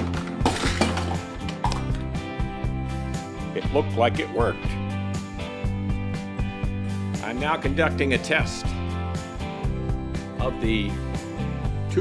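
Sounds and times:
background music with beat: 0:00.0 - 0:12.0.

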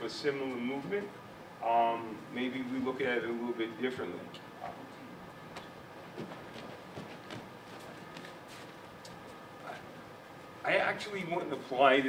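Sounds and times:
bare feet tapping on mats: 0:05.5 - 0:09.9.

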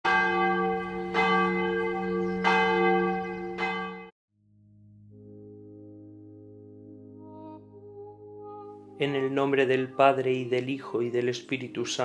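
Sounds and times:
church bell ringing: 0:00.1 - 0:04.1.

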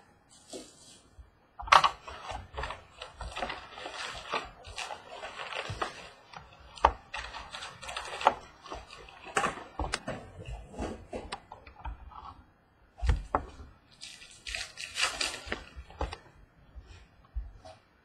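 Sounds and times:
foil packs rustling and crinkling: 0:01.7 - 0:11.4, 0:13.2 - 0:16.3.

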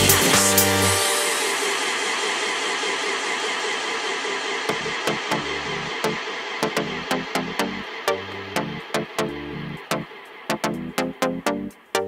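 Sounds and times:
electronic dance beat: 0:00.0 - 0:12.0
steady rushing noise: 0:00.0 - 0:12.0.

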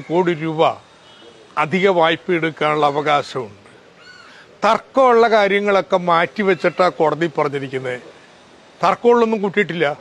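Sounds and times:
man speaking: 0:00.0 - 0:03.7, 0:04.5 - 0:10.0
faint bird call: 0:02.8 - 0:04.5.

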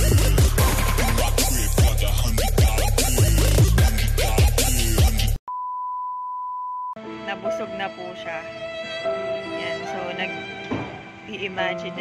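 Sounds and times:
bass-heavy electronic music: 0:00.0 - 0:05.4.

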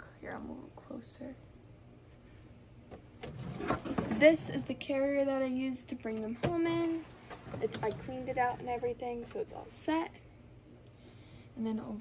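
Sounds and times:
plastic pet carrier scraping and knocking: 0:03.2 - 0:04.6.

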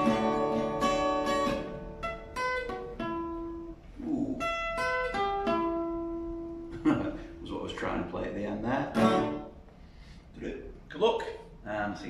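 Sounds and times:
acoustic guitar picked notes: 0:00.0 - 0:10.1.

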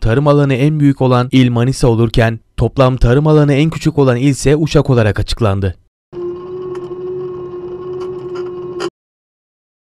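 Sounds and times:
tractor engine droning: 0:06.2 - 0:08.9.

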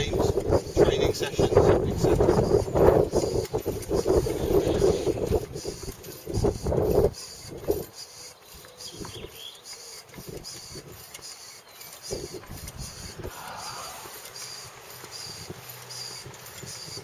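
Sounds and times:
hand pump strokes clicking: 0:00.0 - 0:17.0.

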